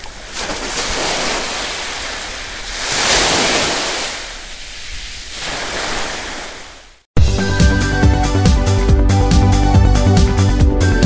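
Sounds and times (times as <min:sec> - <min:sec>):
ocean waves washing: 0:00.0 - 0:07.1.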